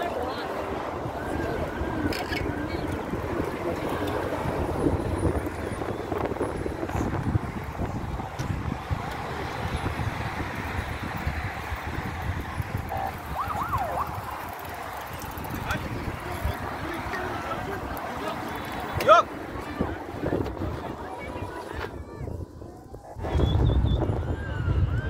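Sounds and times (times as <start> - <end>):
chatter of cyclists: 0.0 - 25.0
wind buffeting microphone: 0.0 - 25.0.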